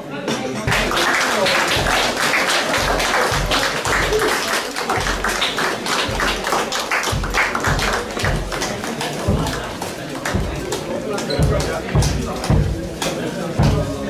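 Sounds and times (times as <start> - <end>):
marching band playing: 0.7 - 12.8
bass drum thumps: 7.1 - 8.6, 9.3 - 14.0.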